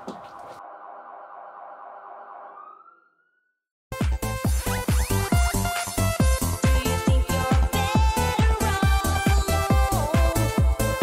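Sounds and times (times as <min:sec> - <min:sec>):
police siren: 0:00.0 - 0:03.7.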